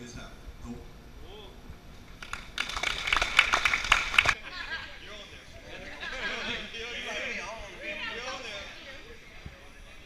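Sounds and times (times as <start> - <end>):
audience applauding: 2.2 - 4.4.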